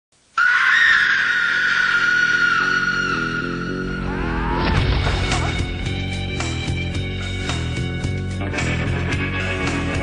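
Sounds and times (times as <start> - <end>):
woman's long high scream: 0.4 - 4.7
music with climbing low notes: 3.2 - 10.0.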